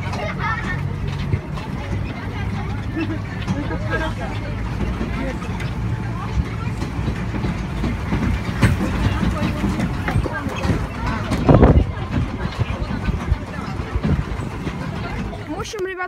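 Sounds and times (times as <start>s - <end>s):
faint voices: 0.0s - 16.0s
vehicle engine humming: 0.0s - 16.0s.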